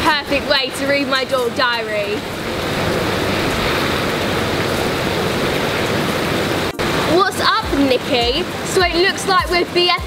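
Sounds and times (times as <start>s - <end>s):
hot tub jets churning water: 0.0s - 10.0s.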